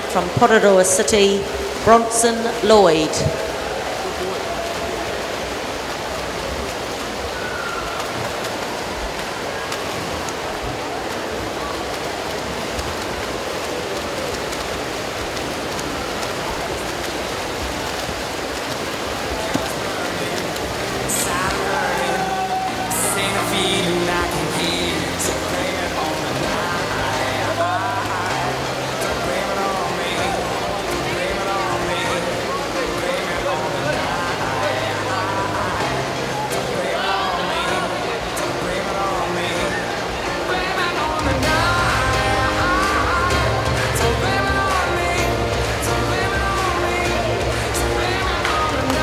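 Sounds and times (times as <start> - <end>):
murmur in pool hall: 0.0 - 49.0
swimmers splashing: 0.0 - 49.0
music with held notes: 20.2 - 49.0.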